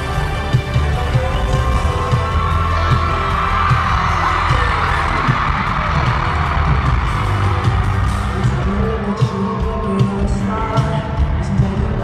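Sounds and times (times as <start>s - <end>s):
deep throbbing bass beat: 0.1s - 12.0s.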